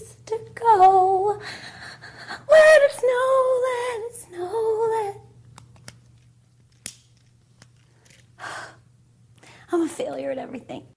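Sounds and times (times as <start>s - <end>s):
faint low hum: 0.0s - 10.9s
woman sighing: 8.4s - 8.8s.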